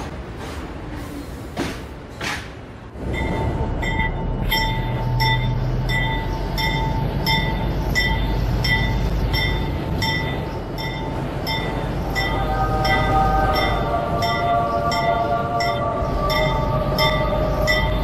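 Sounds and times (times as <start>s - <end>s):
rail clacks: 0.0s - 18.0s
subway train rumbling on rails: 0.0s - 18.0s.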